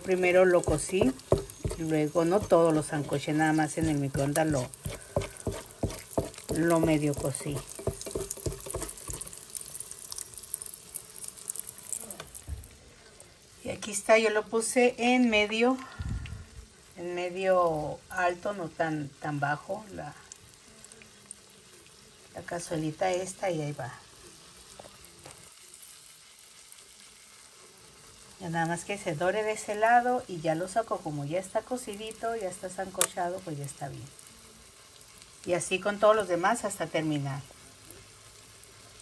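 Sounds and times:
oil popping: 0.0 - 12.5
food frying in oil: 0.0 - 16.0, 16.6 - 39.0
dull knocks: 0.7 - 2.6.

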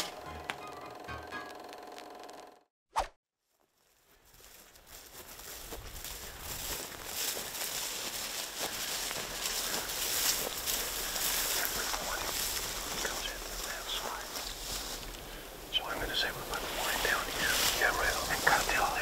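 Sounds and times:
breeze hiss and rustling: 4.4 - 19.0
low whispered voices: 10.7 - 19.0.

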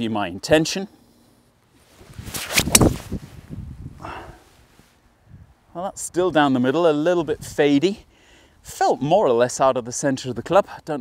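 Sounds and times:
golf club swish: 1.8 - 3.6
golf club striking ball: 2.5 - 3.0.

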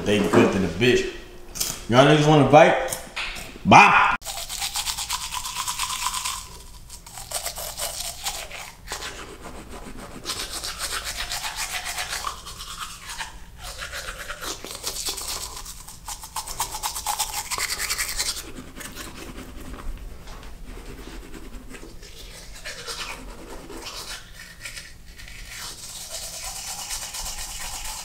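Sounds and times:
toothbrush scrubbing teeth: 4.2 - 28.0.

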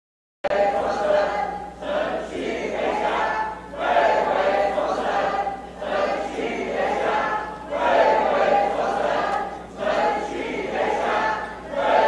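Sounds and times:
crowd chanting in unison: 0.5 - 12.0.

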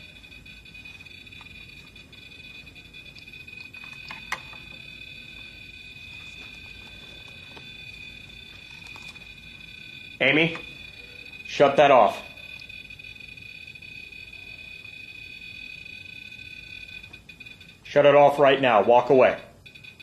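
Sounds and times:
high-pitched electronic alarm tone: 0.0 - 20.0.

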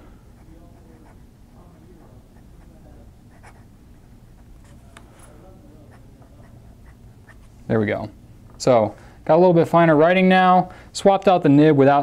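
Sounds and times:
fountain pen scratching on paper: 2.4 - 3.7.

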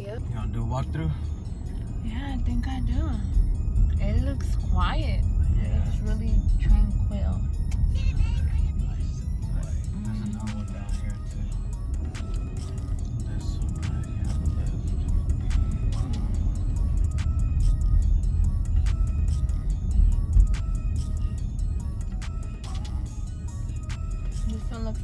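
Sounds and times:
road rumble: 0.0 - 25.0
wind buffeting inside moving car: 0.0 - 25.0
music with clicking beat: 1.6 - 25.0.

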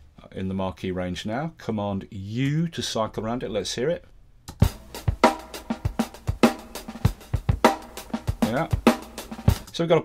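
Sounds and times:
drum kit loop: 4.5 - 10.0.

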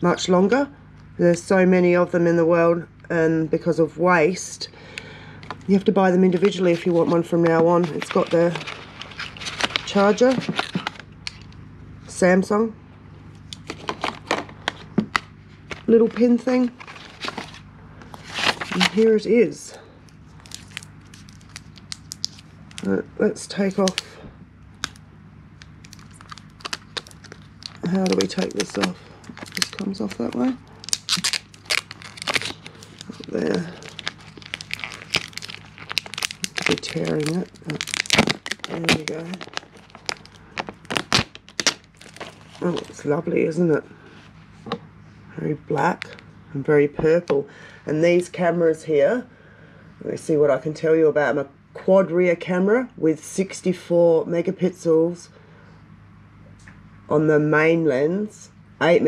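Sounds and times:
plastic crinkling: 5.4 - 11.6, 13.4 - 19.1, 20.2 - 22.9, 23.6 - 24.2, 24.8 - 25.0, 25.6 - 43.1.

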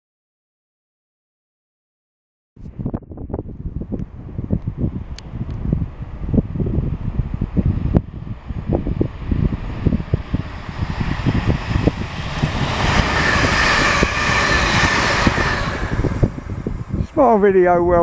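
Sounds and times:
wind buffeting microphone: 2.6 - 18.0
train passing at speed: 4.0 - 17.6.

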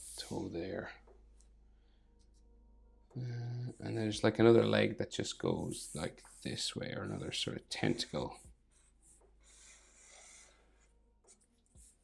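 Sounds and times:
marker strokes on paper: 0.0 - 0.9, 3.7 - 12.0.

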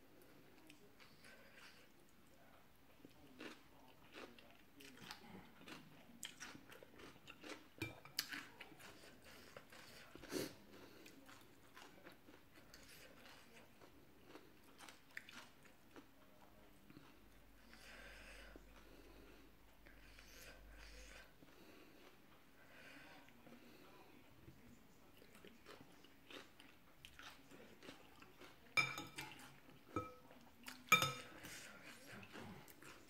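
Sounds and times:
person chewing and slurping noodles: 3.1 - 16.1, 25.2 - 33.0
cutlery knocking glass bowl: 28.8 - 29.2, 30.0 - 30.2, 30.9 - 31.3.

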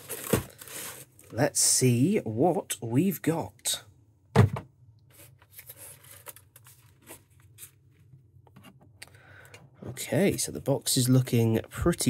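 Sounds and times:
cardboard scraping and rustling: 5.1 - 7.8.

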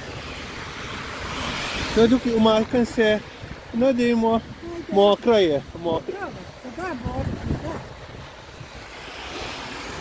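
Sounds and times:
tyres hissing on wet asphalt: 0.0 - 10.0.

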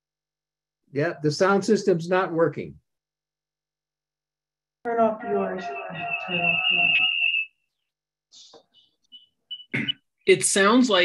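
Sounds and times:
high-pitched feedback whistle: 5.2 - 7.8, 8.8 - 9.8.

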